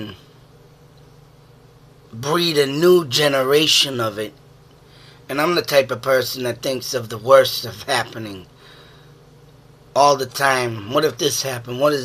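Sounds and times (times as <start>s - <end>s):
man speaking: 0.0s - 0.2s, 2.1s - 4.4s, 5.3s - 8.5s, 9.9s - 12.0s
faint low room hum: 0.0s - 12.0s.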